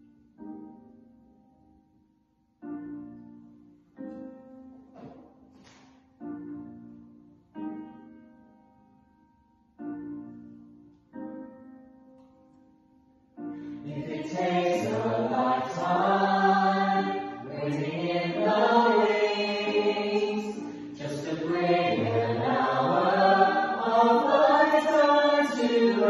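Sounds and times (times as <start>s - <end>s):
group singing in harmony: 13.9s - 26.0s.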